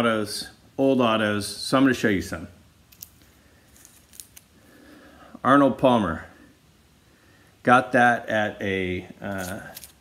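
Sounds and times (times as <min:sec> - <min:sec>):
card handling noise: 0:02.9 - 0:04.6, 0:09.3 - 0:10.0.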